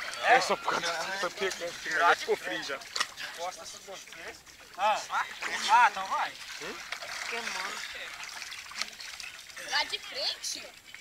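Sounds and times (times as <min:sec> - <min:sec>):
water splashing and trickling: 0:00.0 - 0:11.0.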